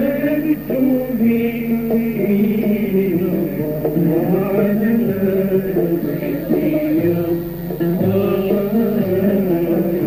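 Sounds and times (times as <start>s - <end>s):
man singing chanted melody: 0.0s - 10.0s.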